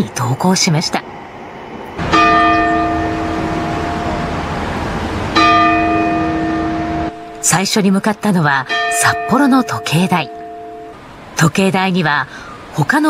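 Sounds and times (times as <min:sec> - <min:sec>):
clock tower bell striking: 0:02.0 - 0:11.2.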